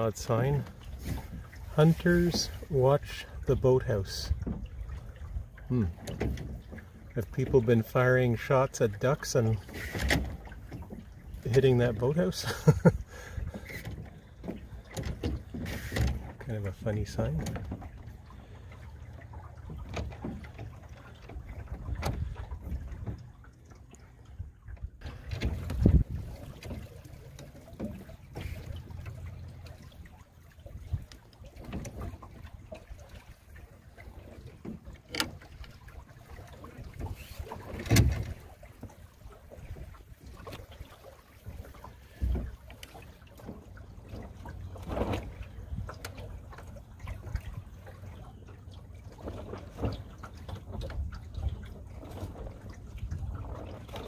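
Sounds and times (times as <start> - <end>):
water slapping against hull: 0.0 - 54.0
wind rumble on microphone: 24.3 - 26.9.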